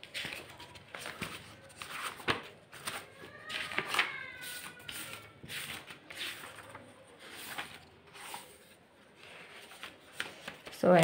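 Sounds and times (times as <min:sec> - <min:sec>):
paper pages rustling: 0:00.0 - 0:11.0
woman speaking: 0:10.7 - 0:11.0.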